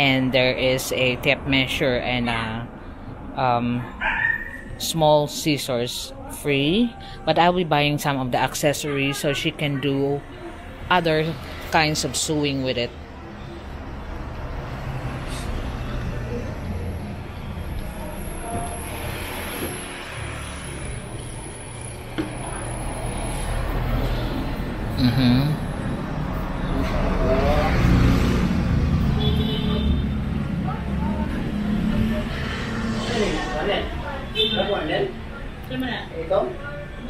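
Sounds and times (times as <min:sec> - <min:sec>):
people talking: 0:00.0 - 0:02.6, 0:03.4 - 0:03.8, 0:04.8 - 0:10.3, 0:10.9 - 0:12.9, 0:25.0 - 0:25.6
street traffic rumble: 0:00.0 - 0:37.0
vehicle engine passing: 0:10.6 - 0:35.5.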